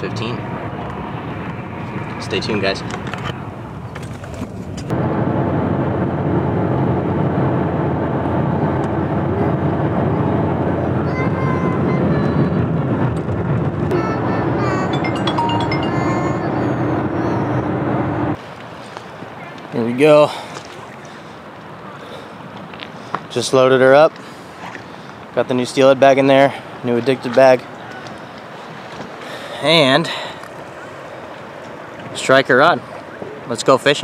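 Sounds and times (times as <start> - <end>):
road noise inside vehicle cabin: 0.0 - 19.8
background music with held tones: 14.9 - 16.8.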